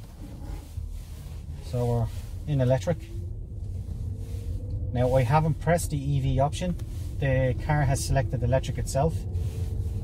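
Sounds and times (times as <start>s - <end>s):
car cabin rumble: 0.0s - 10.0s
faint rising whine: 0.2s - 10.0s.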